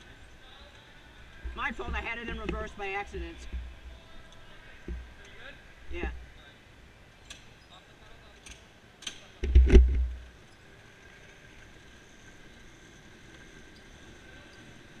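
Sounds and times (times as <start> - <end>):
loud muffled thump and rumble: 9.4 - 10.2
electric go-karts whining: 10.3 - 15.0.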